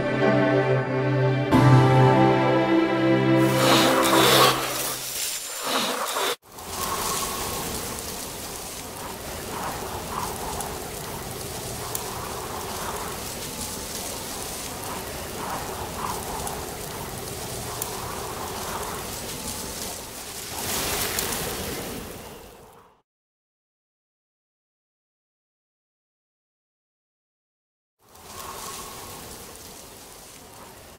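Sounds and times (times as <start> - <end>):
rain-like hiss: 3.4 - 22.8, 28.0 - 30.9.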